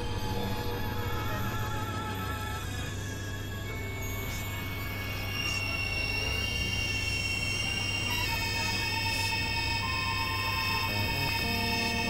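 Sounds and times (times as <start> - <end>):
held synthesizer tones: 9.8 - 12.0
high warbling tone: 9.9 - 12.0
low synthesizer hum: 10.8 - 12.0.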